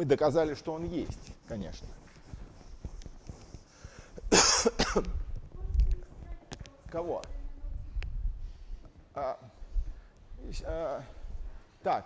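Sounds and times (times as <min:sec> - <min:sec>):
person coughing: 0:04.2 - 0:05.2.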